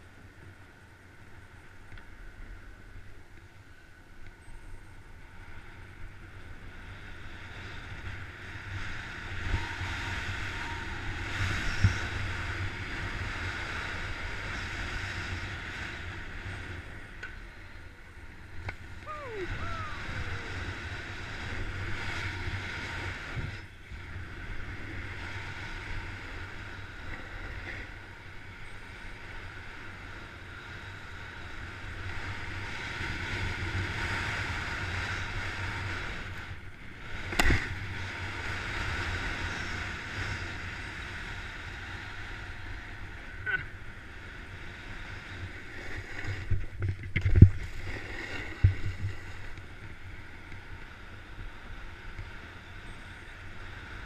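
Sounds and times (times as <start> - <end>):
wind rumble on microphone: 0.0 - 54.0.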